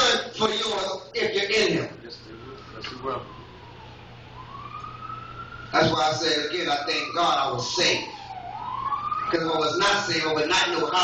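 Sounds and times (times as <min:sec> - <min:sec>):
faint siren wailing: 0:00.0 - 0:11.0.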